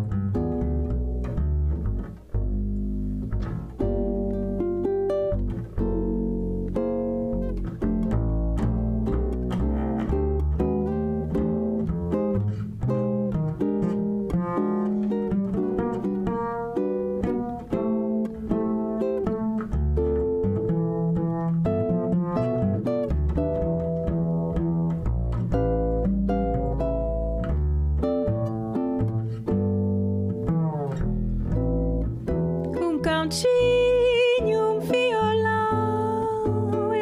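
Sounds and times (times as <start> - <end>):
pizzicato double bass: 0.0 - 37.0
ukulele: 0.0 - 37.0
woman singing: 32.7 - 37.0.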